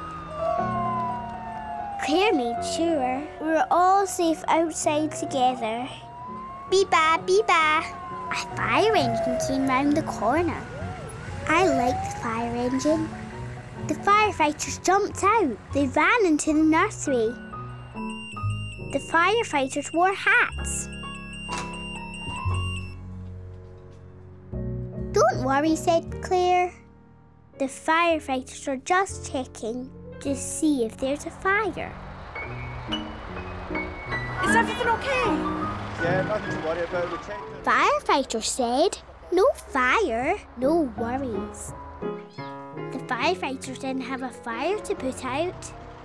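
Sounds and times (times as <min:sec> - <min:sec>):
fire engine siren wailing: 0:00.0 - 0:23.0, 0:31.9 - 0:37.7
soft background music: 0:00.0 - 0:31.9, 0:32.6 - 0:46.0.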